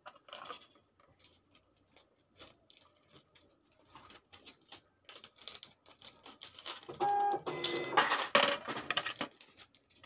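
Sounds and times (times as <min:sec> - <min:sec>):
rings clattering on plastic tray: 0:06.2 - 0:09.7.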